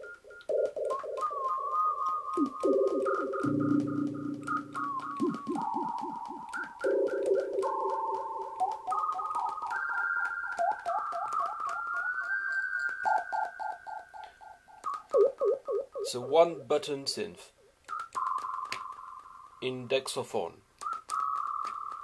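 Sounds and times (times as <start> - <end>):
siren-like synthesizer tones with echo: 0.6 - 16.2.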